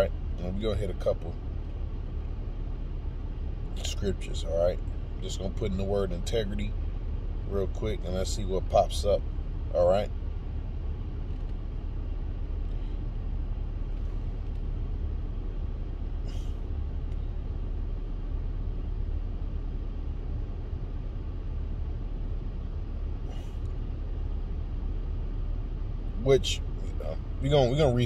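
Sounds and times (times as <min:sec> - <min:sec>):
car idling rumble: 0:00.0 - 0:28.0.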